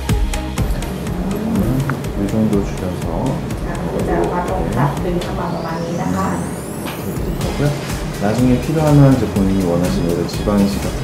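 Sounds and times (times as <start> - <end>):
soft background music: 0.0 - 11.0
high tone gliding upward: 0.6 - 9.3
person speaking: 0.8 - 6.6.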